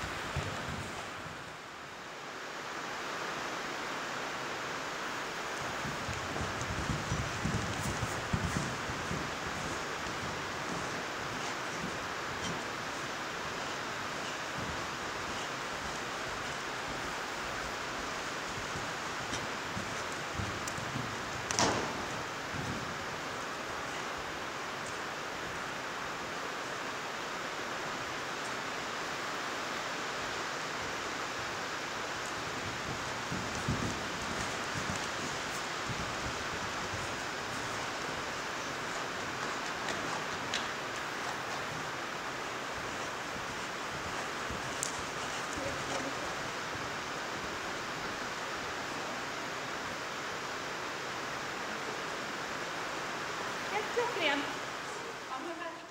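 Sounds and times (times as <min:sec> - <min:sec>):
heavy rain on a metal roof: 0:00.0 - 0:55.9.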